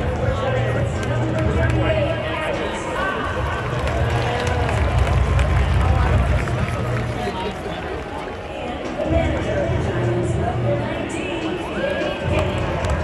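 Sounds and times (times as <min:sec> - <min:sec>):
crowd chatter: 0:00.0 - 0:13.0.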